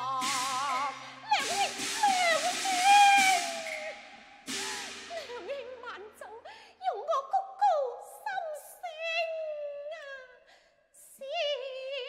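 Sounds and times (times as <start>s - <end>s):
percussion crashes: 0.0s - 5.9s
performer singing with sliding pitch: 0.0s - 6.3s.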